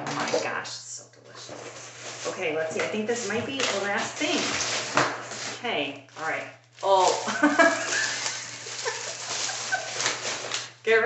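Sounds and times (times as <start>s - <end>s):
woman giggling: 7.2s - 10.3s.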